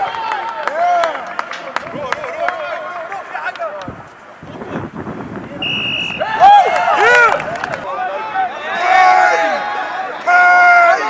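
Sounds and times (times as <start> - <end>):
referee's whistle: 5.6 - 6.4
players shouting: 6.0 - 11.0.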